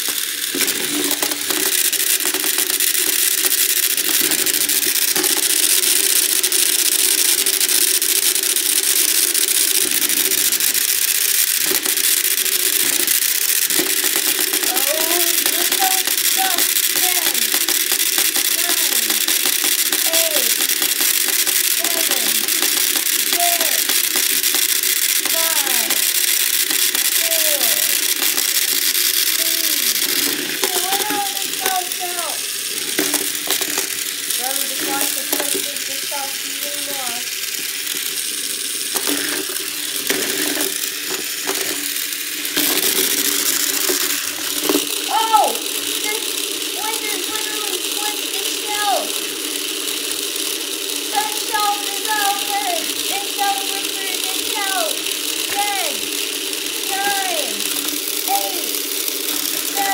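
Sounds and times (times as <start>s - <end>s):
plastic parts rattling and clicking: 0.0s - 59.9s
small electric motors whirring: 0.0s - 59.9s.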